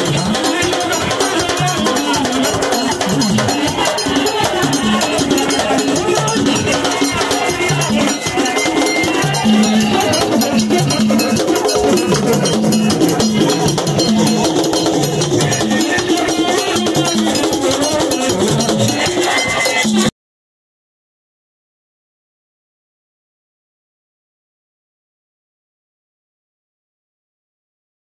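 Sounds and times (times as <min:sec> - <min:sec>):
hand drums beating: 0:00.0 - 0:20.1.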